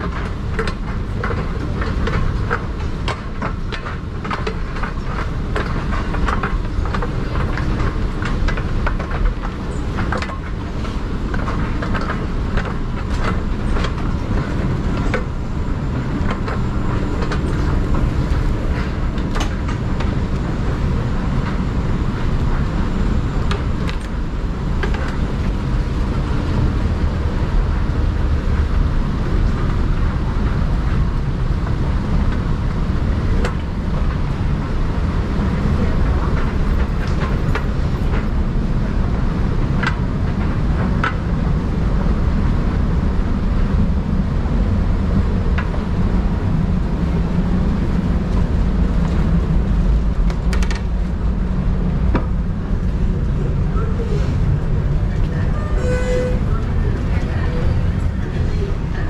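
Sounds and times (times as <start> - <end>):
moving walkway rumble: 0.0 - 59.0.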